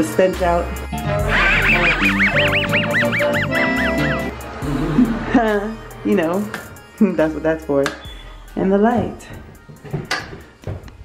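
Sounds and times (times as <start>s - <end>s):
cartoon wheezing laugh: 1.2s - 4.3s.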